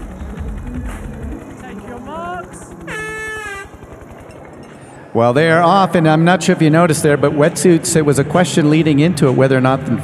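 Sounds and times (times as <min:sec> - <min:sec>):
background music: 0:00.0 - 0:10.0
short rising tones: 0:02.8 - 0:03.9
air horn: 0:02.9 - 0:03.8.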